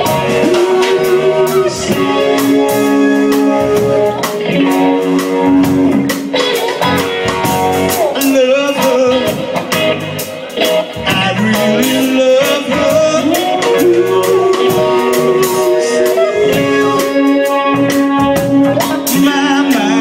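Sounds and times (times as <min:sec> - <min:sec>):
electric guitar bending long notes: 0:00.0 - 0:20.0
rock band playing reggae groove: 0:00.0 - 0:20.0.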